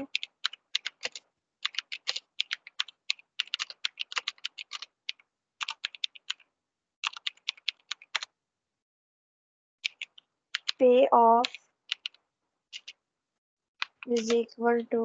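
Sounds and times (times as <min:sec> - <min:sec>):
typing on keyboard: 0:00.0 - 0:08.3, 0:09.8 - 0:10.8, 0:11.4 - 0:13.0, 0:13.8 - 0:14.4.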